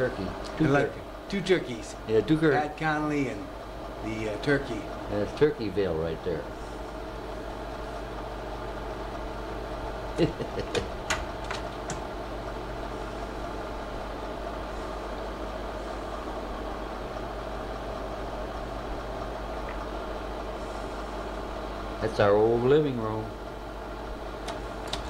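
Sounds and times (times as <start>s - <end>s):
machine hum with faint whine: 0.0s - 25.0s
person laughing: 10.1s - 11.0s.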